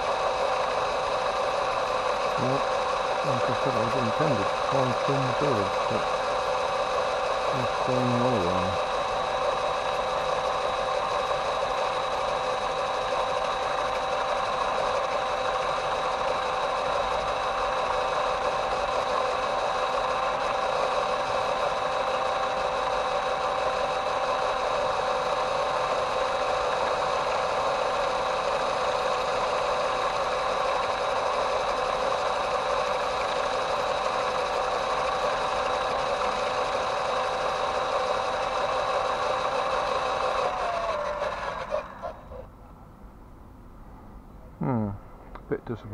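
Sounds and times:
electric motor and gearbox whining: 0.0s - 42.5s.

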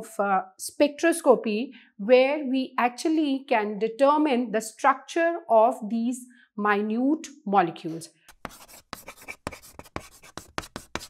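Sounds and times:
chalk scratching on blackboard: 8.3s - 11.0s.

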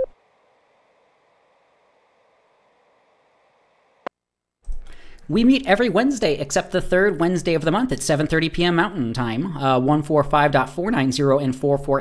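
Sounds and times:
faint steady hiss: 0.0s - 4.1s.

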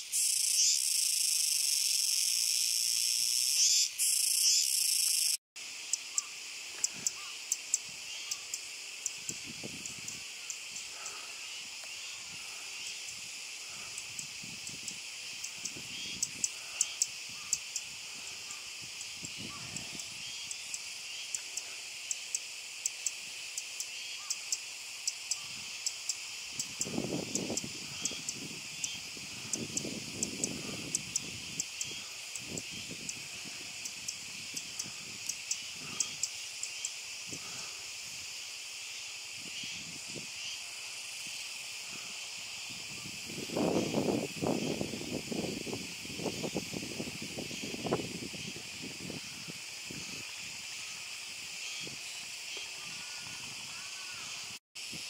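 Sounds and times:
cicadas buzzing: 0.0s - 55.0s.

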